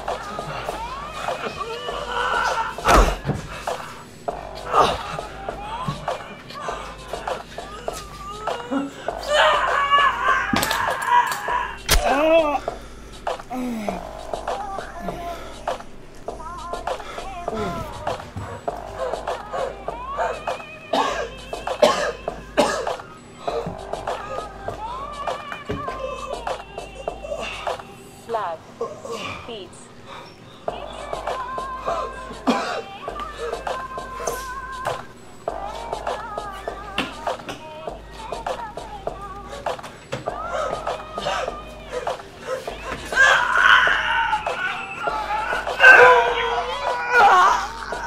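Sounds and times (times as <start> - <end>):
music: 0.0 - 28.6, 29.7 - 48.0
man screaming: 9.2 - 12.6, 43.1 - 48.0
man coughing and choking: 20.9 - 23.8, 32.3 - 32.9.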